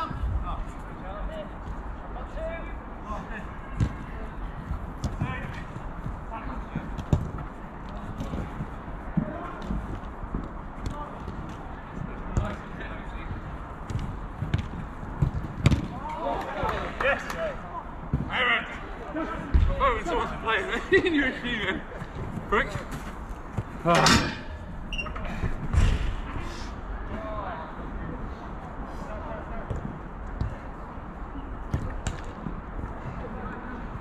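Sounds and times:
football being kicked: 13.8 - 16.0
players shouting: 15.8 - 21.8.

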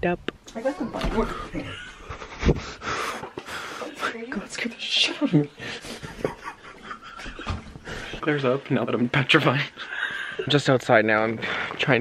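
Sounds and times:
person panting laughter: 1.3 - 3.8.

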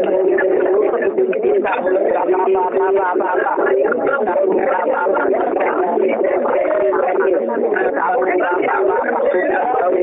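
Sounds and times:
speech over telephone line: 0.0 - 10.0.

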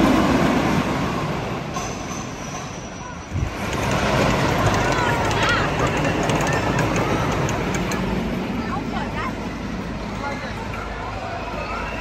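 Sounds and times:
roller coaster rumbling on track: 0.0 - 12.0
voices: 2.8 - 12.0.

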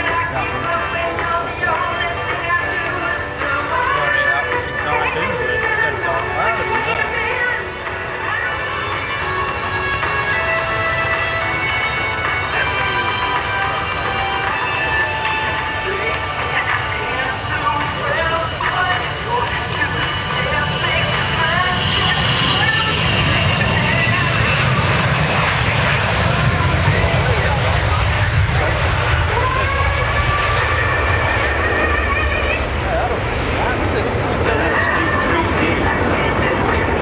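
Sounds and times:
jet aircraft taking off: 0.0 - 37.0.

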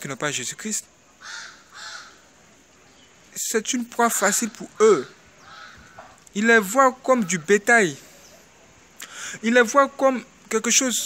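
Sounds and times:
bird calling: 1.1 - 9.3.

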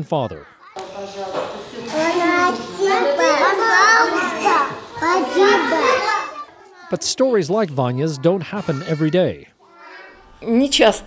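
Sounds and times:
young children speaking: 0.3 - 7.1, 8.0 - 11.0.

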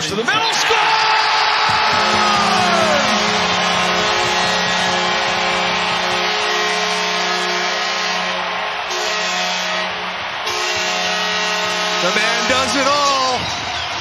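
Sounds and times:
arena crowd cheering: 0.1 - 14.0
goal horn chord: 1.8 - 13.4.

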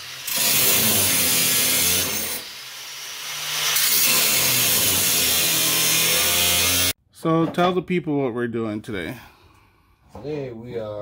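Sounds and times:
angle grinder cutting sheet metal: 0.0 - 7.0.

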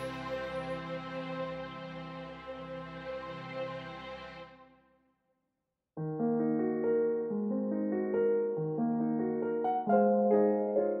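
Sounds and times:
slow solo piano: 6.0 - 11.0.

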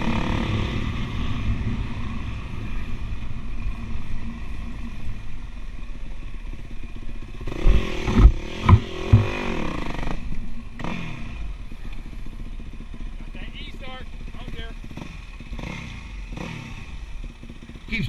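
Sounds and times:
dirt bike engine revving: 0.0 - 18.0
loud thumps: 7.6 - 9.5.

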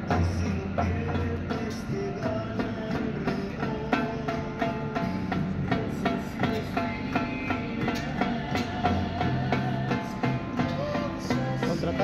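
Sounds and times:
latin tropical band music: 0.0 - 12.0.

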